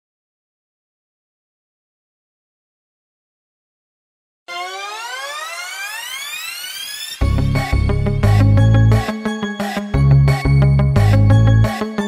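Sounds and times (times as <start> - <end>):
synthesized rising glide: 4.5 - 9.2.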